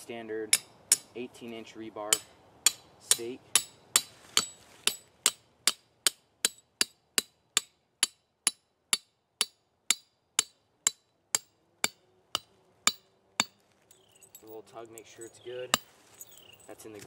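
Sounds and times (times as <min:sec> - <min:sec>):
hammer striking steel stake: 0:00.5 - 0:01.2, 0:02.1 - 0:13.6, 0:15.7 - 0:16.4.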